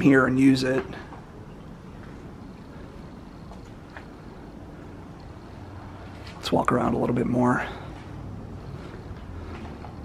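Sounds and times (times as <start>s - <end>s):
quiet background rumble: 0.0s - 10.0s.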